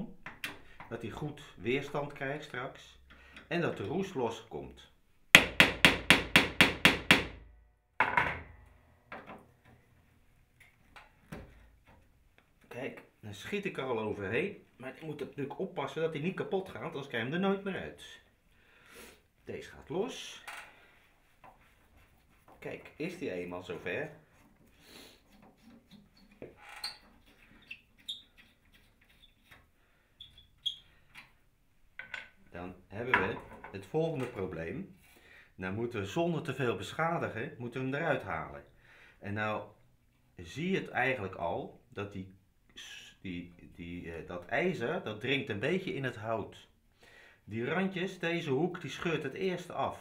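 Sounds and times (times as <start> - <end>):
screw squeaking: 25.6 - 31.3.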